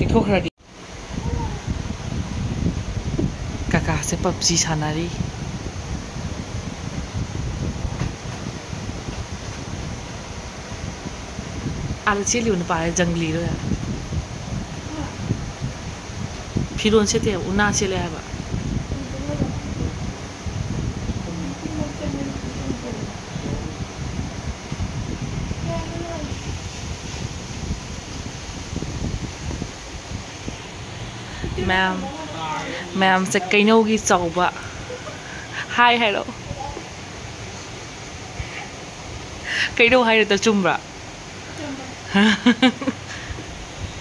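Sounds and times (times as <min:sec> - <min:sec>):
electric fan air rush: 0:00.0 - 0:44.0
wind buffeting microphone: 0:00.0 - 0:44.0.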